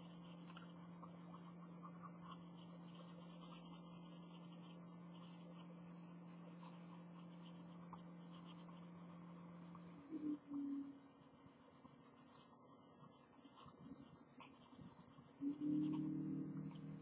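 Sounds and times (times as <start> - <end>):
pencil scratching on paper: 0.0 - 17.0
steady low hum: 0.0 - 17.0.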